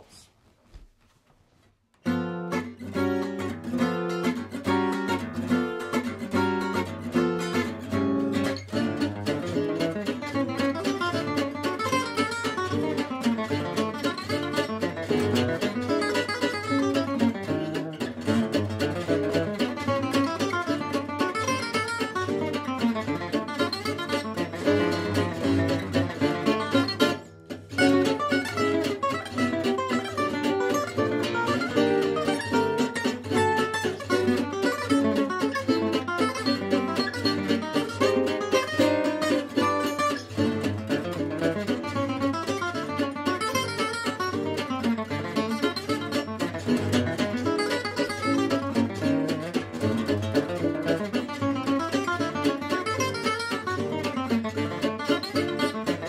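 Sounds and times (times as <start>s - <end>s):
acoustic guitars playing a waltz: 2.0s - 56.0s.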